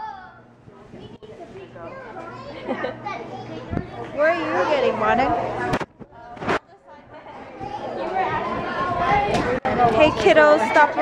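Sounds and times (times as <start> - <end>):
children's high-pitched voices: 0.0 - 4.2
indistinct talk: 0.0 - 11.0.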